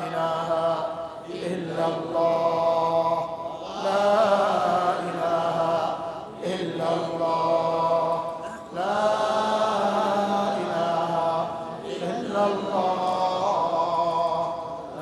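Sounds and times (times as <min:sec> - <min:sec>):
man chanting: 0:00.0 - 0:15.0.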